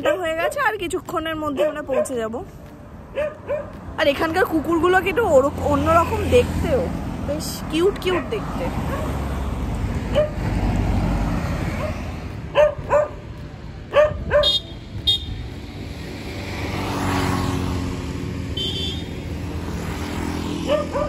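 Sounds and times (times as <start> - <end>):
dog barking: 0.0 - 0.7, 1.5 - 2.3, 3.1 - 3.8, 8.1 - 9.2, 10.1 - 10.5, 11.8 - 13.3, 13.9 - 14.6, 20.6 - 21.0
motor scooter passing: 1.6 - 21.0.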